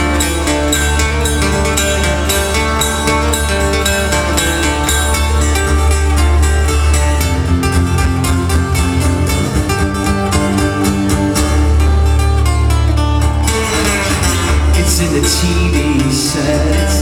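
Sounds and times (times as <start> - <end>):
live band playing: 0.0 - 17.0.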